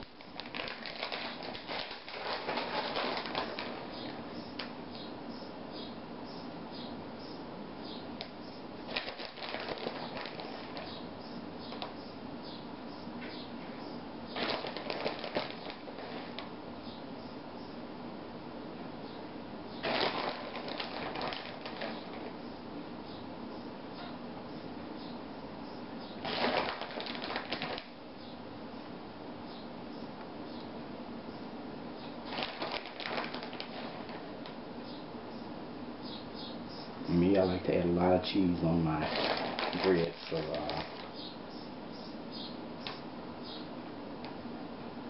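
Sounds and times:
plastic bag crinkling: 0.0s - 4.7s, 8.8s - 11.1s, 14.3s - 16.5s, 19.8s - 22.4s, 26.2s - 28.0s, 32.2s - 34.5s, 38.6s - 41.3s.

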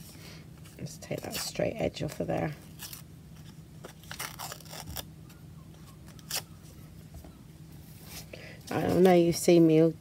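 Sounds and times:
paper strip tearing: 4.0s - 5.1s.

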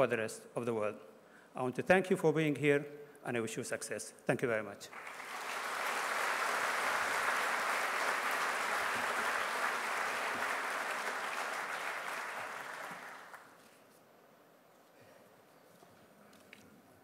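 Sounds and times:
large audience applauding: 4.9s - 13.6s.

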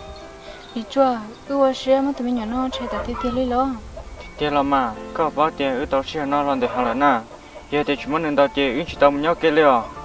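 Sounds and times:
fowl calling: 0.3s - 1.6s, 2.4s - 10.0s.

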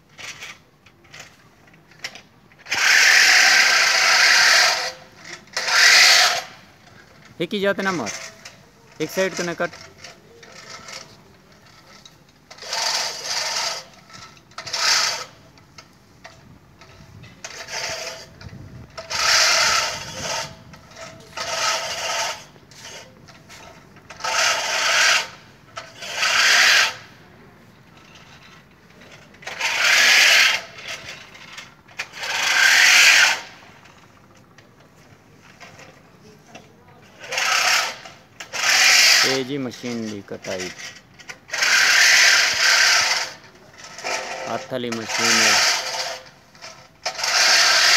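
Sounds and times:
reel lawn mower whirring: 0.0s - 47.9s.

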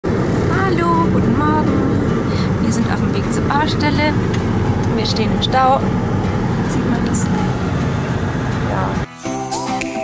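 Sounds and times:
van engine and road noise: 0.0s - 10.0s.

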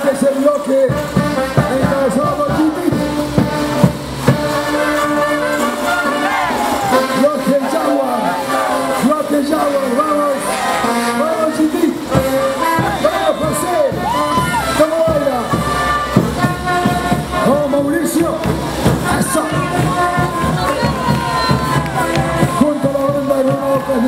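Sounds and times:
brass band music with drums: 0.0s - 24.0s
crowd voices: 0.0s - 24.0s.

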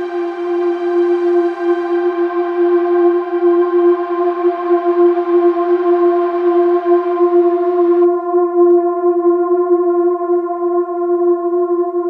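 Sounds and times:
held synthesizer note: 0.0s - 8.8s.

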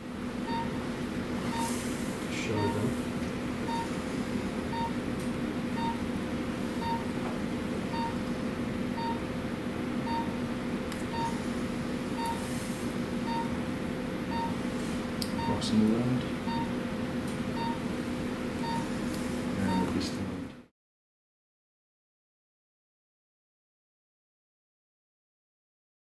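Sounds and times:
steady equipment hum: 0.0s - 20.7s
patient monitor beeping: 0.2s - 5.1s, 5.7s - 8.3s, 8.9s - 9.3s, 10.0s - 10.4s, 11.0s - 16.8s, 17.4s - 20.0s.

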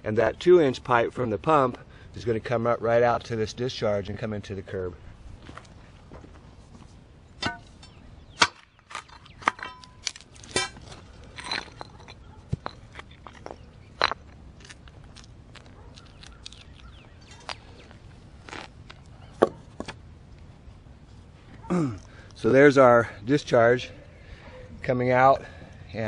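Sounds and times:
pry bar striking concrete: 7.4s - 13.1s.

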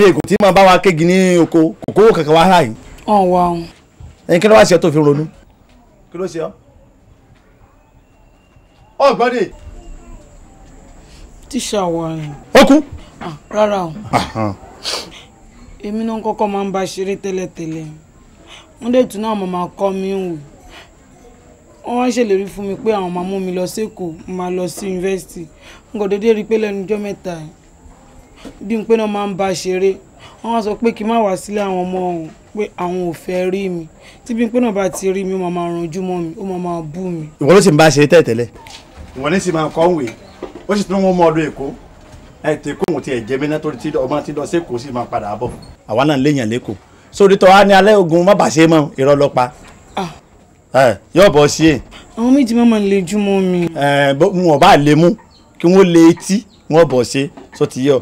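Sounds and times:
short breathy hiss: 14.8s - 15.4s.

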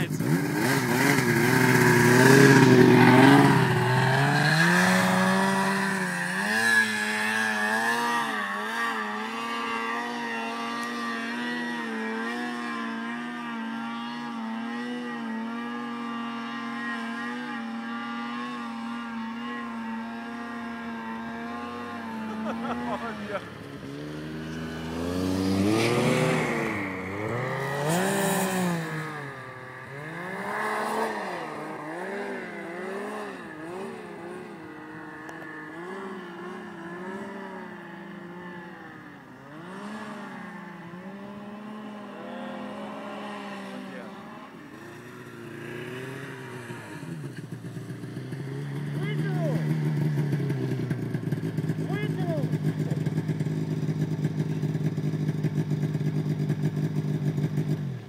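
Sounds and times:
nearer snowmobile engine steady: 0.0s - 58.0s
snowmobile engine revving: 0.0s - 58.0s.

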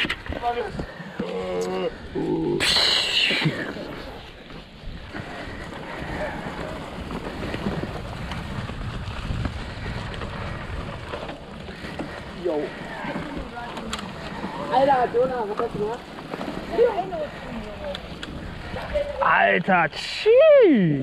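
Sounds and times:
bike tyres rolling over dry leaves: 0.0s - 2.4s, 3.4s - 19.5s
wind on microphone: 2.0s - 12.3s.

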